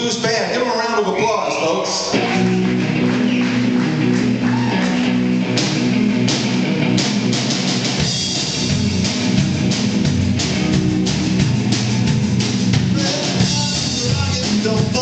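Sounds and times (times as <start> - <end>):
amplified electric guitars: 1.1 - 15.0
drum kit beat: 2.2 - 15.0.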